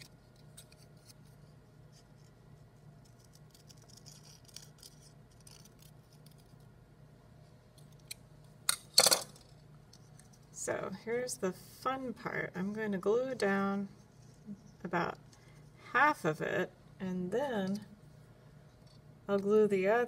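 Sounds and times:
scissors scraping: 3.0 - 6.6.

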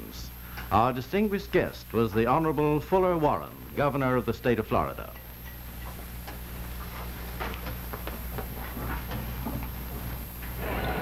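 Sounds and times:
film soundtrack hum and hiss: 0.0 - 11.0.

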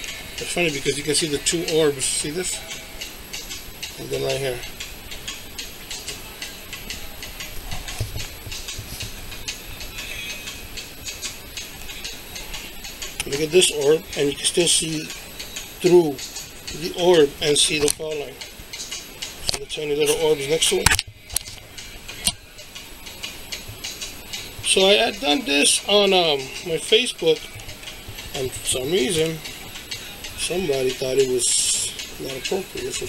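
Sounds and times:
room hiss: 0.0 - 20.8, 21.6 - 33.0
rapid ticking: 0.0 - 33.0.

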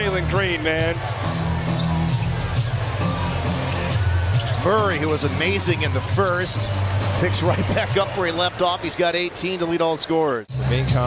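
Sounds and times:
music over arena speakers: 0.0 - 8.8, 10.5 - 11.0
crowd noise: 0.0 - 11.0.

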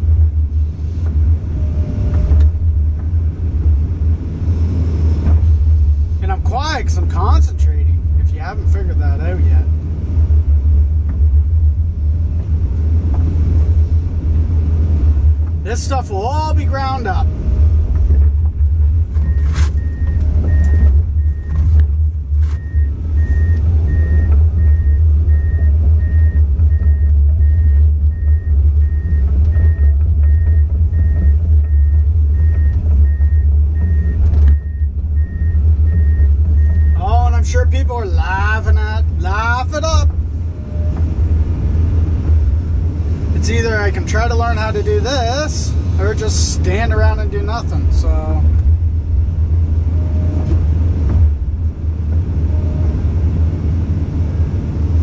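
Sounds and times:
excavator diesel engine drone: 0.0 - 55.0.

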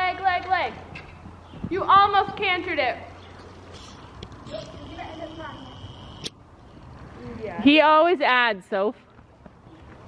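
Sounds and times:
horse hooves on sand: 0.0 - 2.9.

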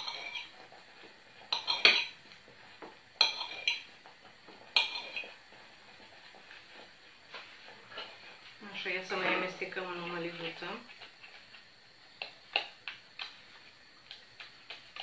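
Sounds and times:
knife clinking against ceramic plate: 1.5 - 2.2.

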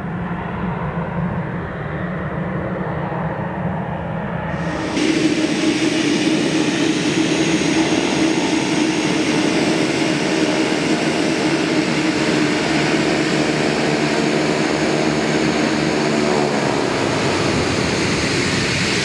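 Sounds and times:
turboprop plane taxiing: 0.0 - 19.0.

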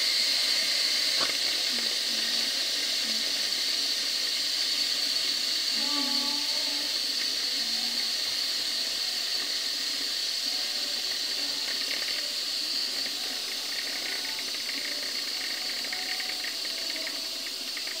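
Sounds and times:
pressure cooker steam hissing: 0.0 - 18.0.

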